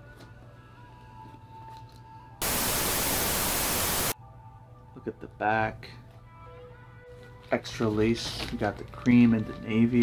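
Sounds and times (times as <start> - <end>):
faint background music: 0.0 - 2.4, 4.2 - 10.0
tv static hiss: 2.4 - 4.2.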